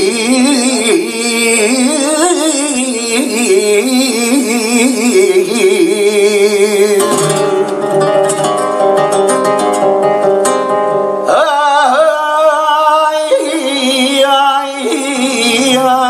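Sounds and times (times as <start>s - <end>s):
man singing flamenco: 0.0s - 10.2s, 11.2s - 16.0s
nylon-string guitar: 0.0s - 16.0s.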